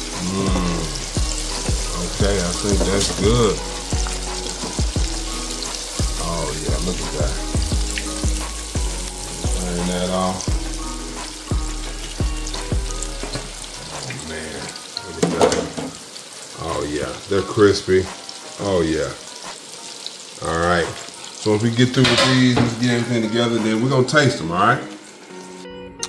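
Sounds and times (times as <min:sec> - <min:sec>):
food sizzling in deep fryer oil: 0:00.0 - 0:25.7
background music with steady beat: 0:00.0 - 0:26.0.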